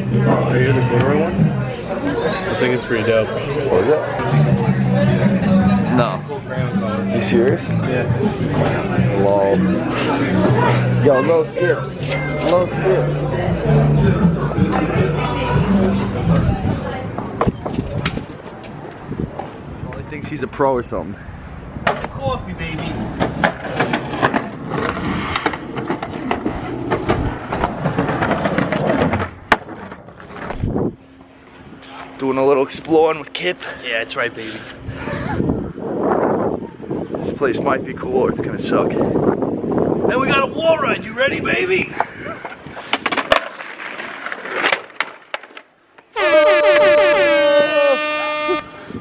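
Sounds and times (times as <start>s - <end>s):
street noise: 0.0s - 49.0s
skateboard rolling on concrete: 13.4s - 20.4s, 21.5s - 32.2s, 41.0s - 49.0s
horn-like sound effect: 46.1s - 49.0s.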